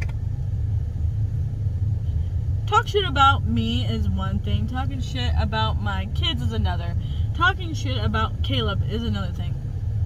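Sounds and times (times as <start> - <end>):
car engine running: 0.0 - 10.0
road noise: 0.0 - 10.0.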